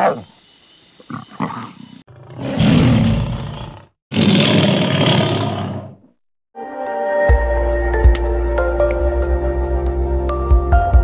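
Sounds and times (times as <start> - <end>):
big cat roaring: 1.1 - 6.0.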